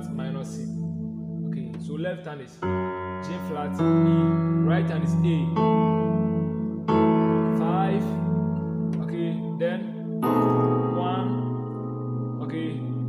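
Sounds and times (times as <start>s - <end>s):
piano chords on digital keyboard: 0.0s - 13.0s.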